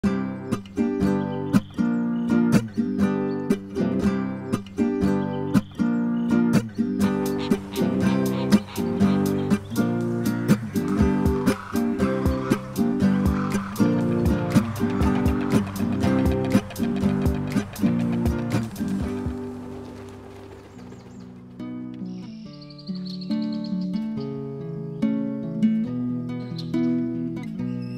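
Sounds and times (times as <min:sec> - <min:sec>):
acoustic guitar strumming: 0:00.0 - 0:20.6
background music held notes: 0:00.0 - 0:27.7.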